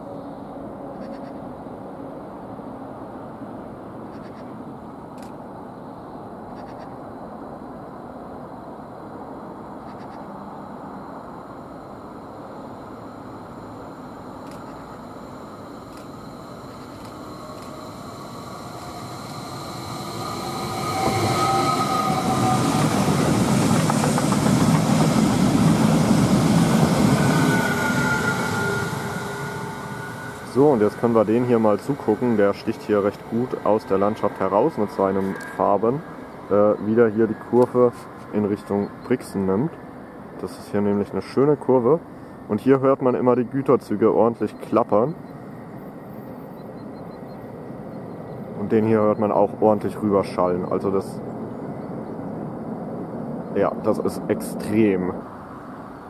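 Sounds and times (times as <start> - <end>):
high steady train whine: 0.0 - 56.0
train wheels rumbling on rails: 14.5 - 38.7.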